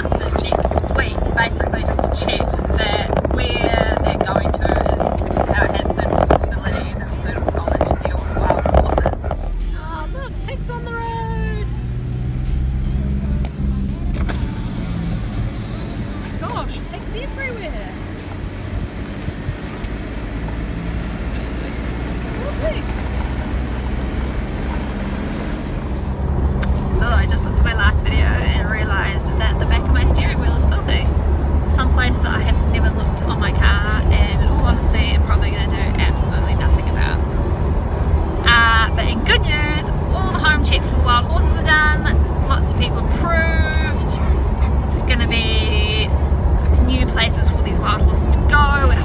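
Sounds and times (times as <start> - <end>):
woman's voice: 0.0 - 11.8, 16.3 - 18.0, 26.9 - 37.3, 38.4 - 49.0
car engine and road rumble: 0.0 - 49.0.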